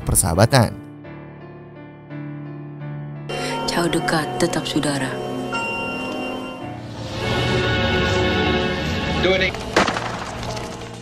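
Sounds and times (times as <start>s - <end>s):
background music: 0.0s - 11.0s
sudden loud crack: 9.5s - 11.0s.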